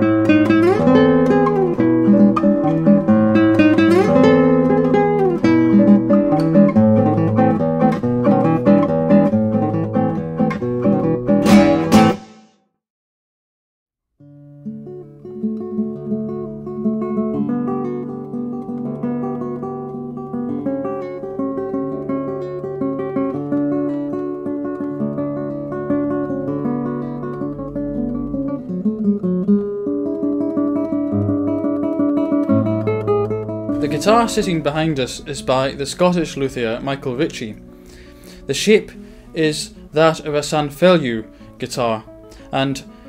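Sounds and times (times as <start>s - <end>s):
fingerpicked classical guitar: 0.0s - 12.2s, 14.2s - 43.0s.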